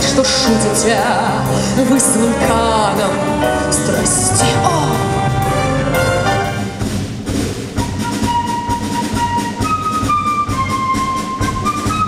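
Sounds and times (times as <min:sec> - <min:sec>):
wind band playing: 0:01.8 - 0:12.0
high held note: 0:03.4 - 0:07.3.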